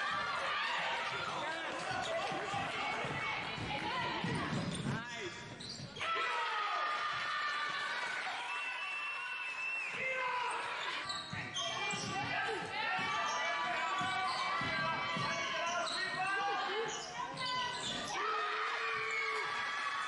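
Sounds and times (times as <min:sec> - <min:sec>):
sneakers squeaking: 0:00.1 - 0:06.1, 0:09.9 - 0:18.2
basketball bouncing on wooden floor: 0:13.9 - 0:16.2.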